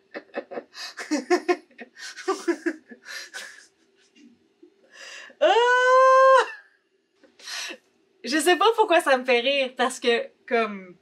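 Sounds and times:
woman laughing: 0:00.0 - 0:03.8.

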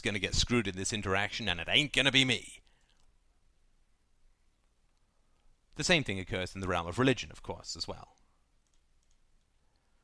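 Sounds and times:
faint clicks: 0:08.1 - 0:10.0.

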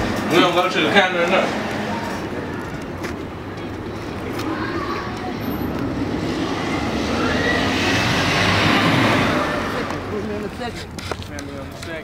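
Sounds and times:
vehicle passing by: 0:00.0 - 0:12.0.

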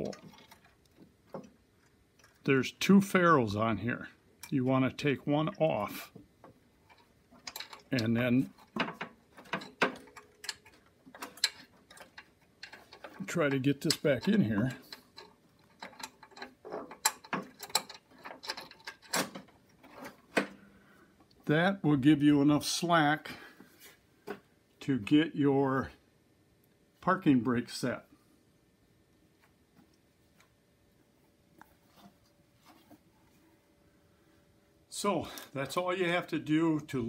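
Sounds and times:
faint metal clicks and taps: 0:00.0 - 0:02.5, 0:06.1 - 0:20.6.

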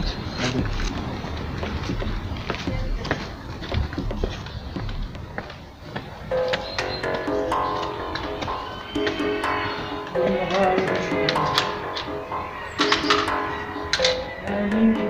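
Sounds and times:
short knocks and scuffs: 0:00.0 - 0:06.9
background music with held notes: 0:06.3 - 0:15.0.

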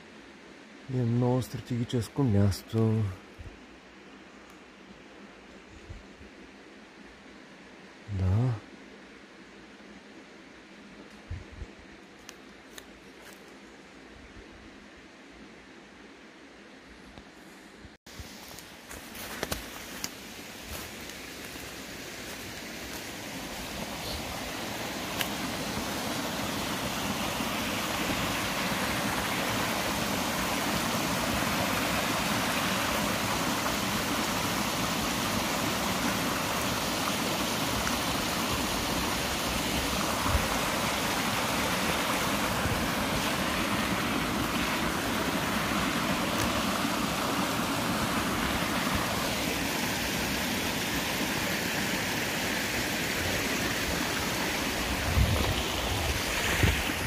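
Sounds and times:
stream rushing over rocks: 0:18.2 - 0:57.0.

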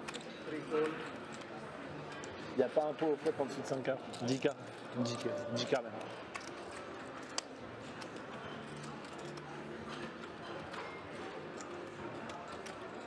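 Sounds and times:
clay poker chips clicking: 0:00.0 - 0:02.4, 0:03.2 - 0:13.0
faint murmur of room: 0:00.0 - 0:13.0.

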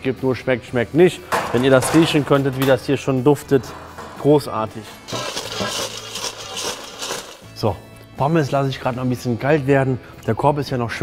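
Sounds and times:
fries rattling in a steel bowl: 0:05.0 - 0:07.7.

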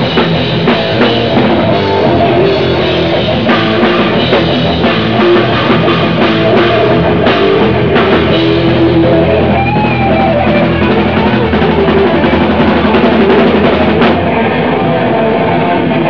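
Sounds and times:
punk band playing live: 0:00.0 - 0:16.0.

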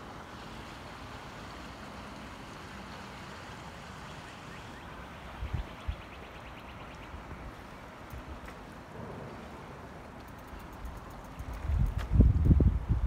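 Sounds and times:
creek water rushing: 0:00.0 - 0:11.9.

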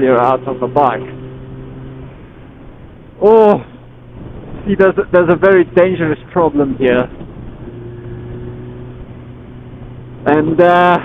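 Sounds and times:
motorcycle engine cruising: 0:00.0 - 0:11.0
wind and road noise: 0:00.0 - 0:11.0.

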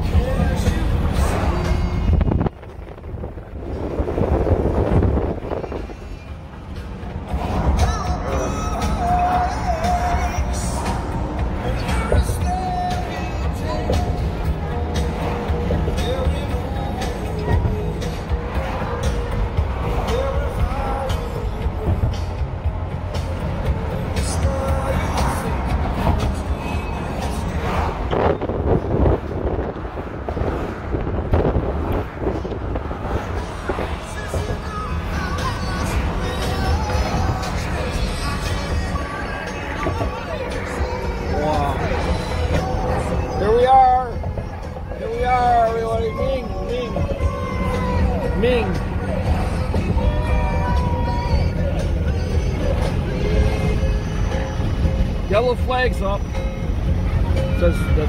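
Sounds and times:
indistinct voices: 0:00.0 - 0:30.8, 0:31.4 - 0:58.0
car cabin road rumble: 0:00.0 - 0:58.0
music playing: 0:00.0 - 0:58.0.

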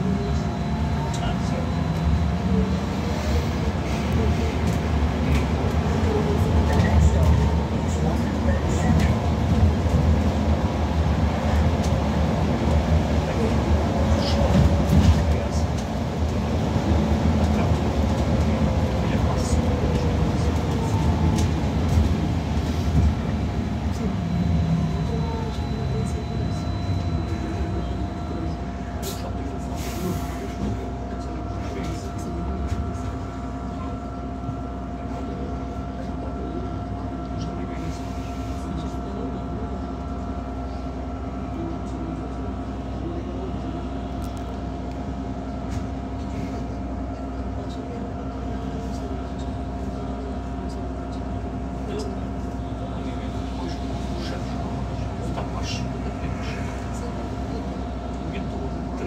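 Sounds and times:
road rumble: 0:00.0 - 0:59.0.

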